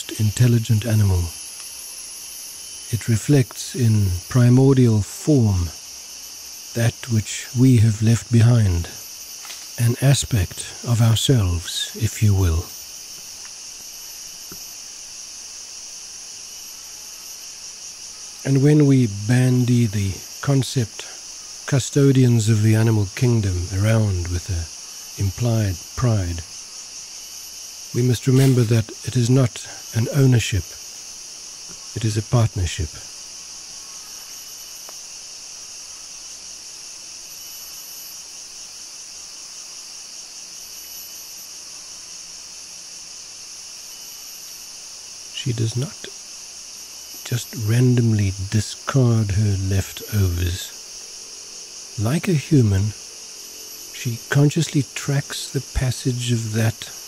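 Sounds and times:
high-pitched insect chorus: 0.0s - 57.0s.

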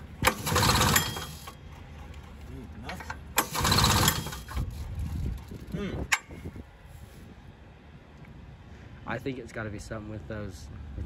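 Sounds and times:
engine starter click: 0.2s - 1.6s, 3.0s - 4.7s.

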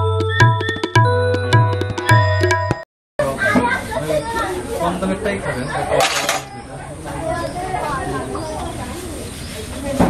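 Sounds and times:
people talking indistinctly: 3.2s - 10.0s.

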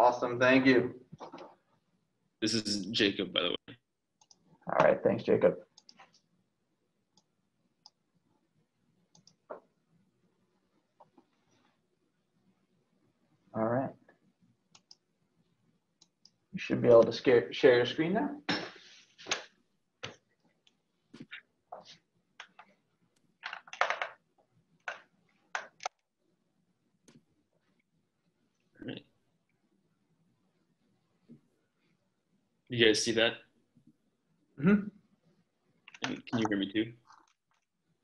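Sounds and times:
computer mouse clicks: 4.2s - 4.9s, 5.7s - 6.3s, 9.1s - 9.7s, 14.7s - 15.0s, 24.8s - 26.1s, 35.8s - 37.7s
keyboard keys clicking: 23.4s - 24.2s.

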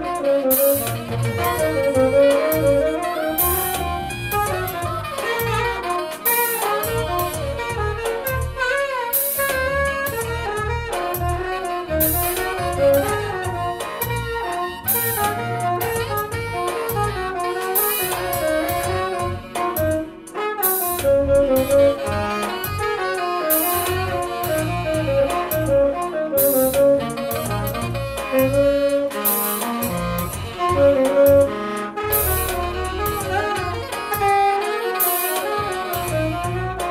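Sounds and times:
backing track with bass line: 0.0s - 36.9s
saxophone jazzy melody: 0.0s - 36.9s.

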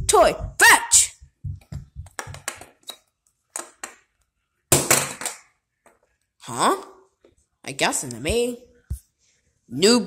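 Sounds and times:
handling clicks and knocks: 1.7s - 2.9s.

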